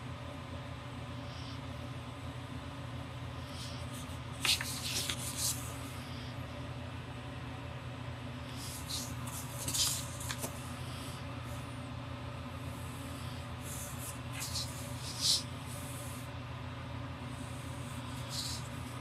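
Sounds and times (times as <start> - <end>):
steady low hum: 0.0 - 19.0
pen scratching on paper: 3.7 - 5.7, 8.6 - 10.6, 13.6 - 16.2, 17.8 - 19.0.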